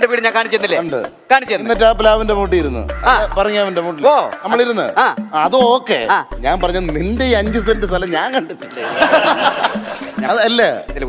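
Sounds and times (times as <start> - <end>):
man talking: 0.0 - 9.0, 10.2 - 11.0
background music: 0.0 - 11.0
low bass note: 1.8 - 3.4.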